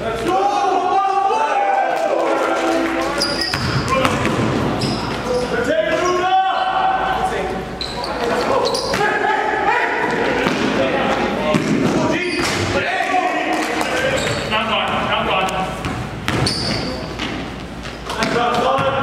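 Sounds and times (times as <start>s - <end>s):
players calling out: 0.0s - 15.8s
basketball bouncing on court: 3.4s - 5.2s, 15.8s - 19.0s.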